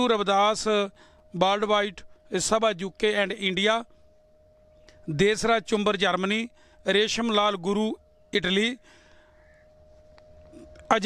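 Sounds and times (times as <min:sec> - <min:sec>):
thin steady hum: 0:00.0 - 0:11.0
crow cawing: 0:08.9 - 0:10.6.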